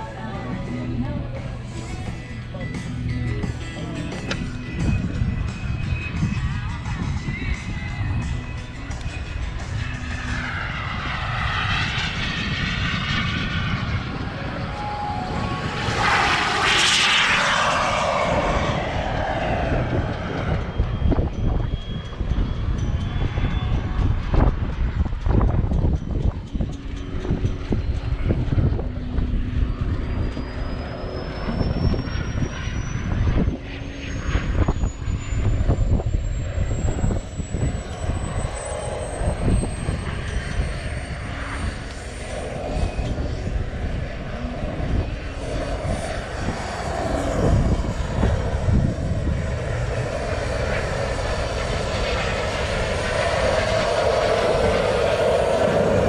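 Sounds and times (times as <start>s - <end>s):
low rumble: 0.0s - 56.0s
model jet flying past: 0.0s - 56.0s.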